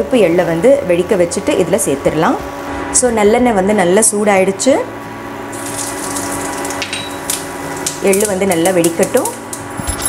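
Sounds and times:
seeds sizzling in hot oil: 0:05.1 - 0:09.8
popping seeds: 0:05.5 - 0:09.9.

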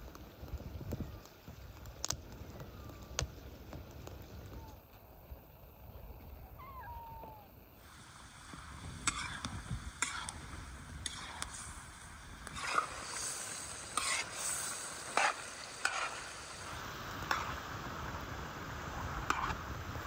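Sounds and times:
cat meowing: 0:06.6 - 0:07.5
meat sizzling in a pan: 0:07.8 - 0:20.0
metal spoon scraping a pan: 0:12.5 - 0:16.2.

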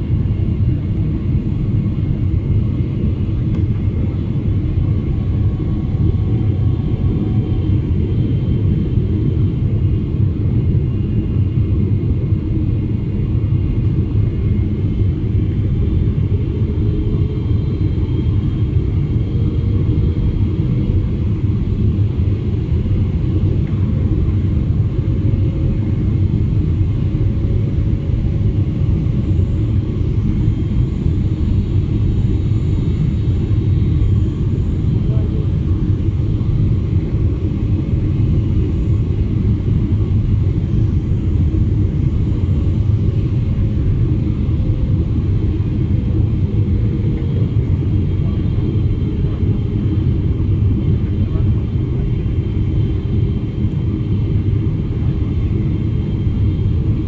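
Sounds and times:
airliner cabin rumble: 0:00.0 - 0:57.0.

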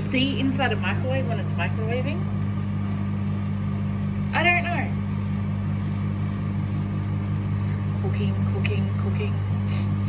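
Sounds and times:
microwave oven humming: 0:00.0 - 0:10.0.

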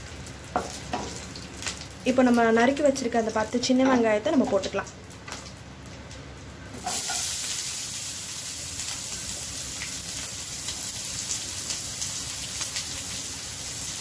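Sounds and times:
onions sizzling in hot oil: 0:00.0 - 0:03.3, 0:06.7 - 0:14.0.

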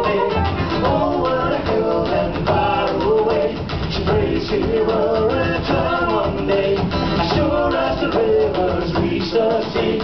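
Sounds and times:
electric bass: 0:00.0 - 0:09.9
acoustic guitar: 0:00.0 - 0:10.0.

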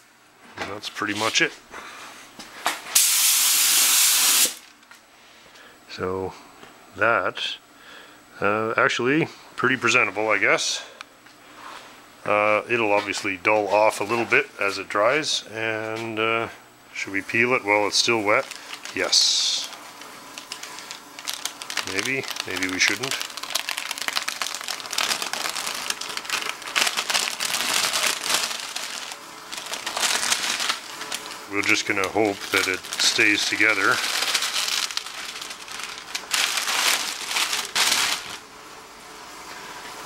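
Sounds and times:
masking paper and tape peeled: 0:17.9 - 0:38.4.

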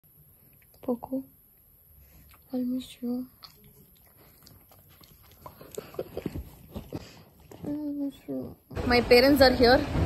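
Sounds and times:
dog licking microphone: 0:03.4 - 0:08.0.

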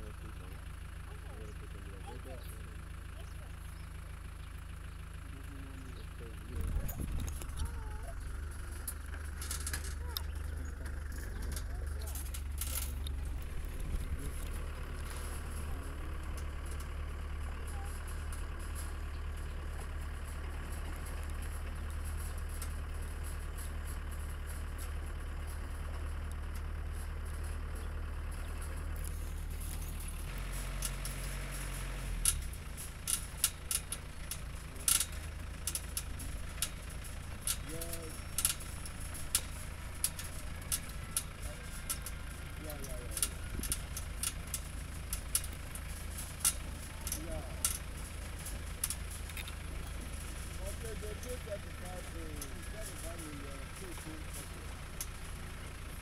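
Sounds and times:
knocks and rattles on rough track: 0:00.0 - 0:56.0
vehicle engine rumble: 0:00.0 - 0:56.0.

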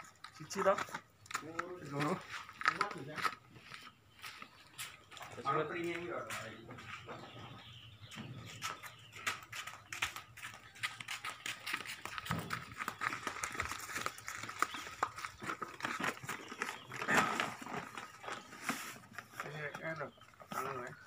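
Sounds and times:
clicks and knocks of planter bags: 0:00.0 - 0:03.9, 0:08.2 - 0:21.0
rustling of plant leaves: 0:10.9 - 0:20.9.

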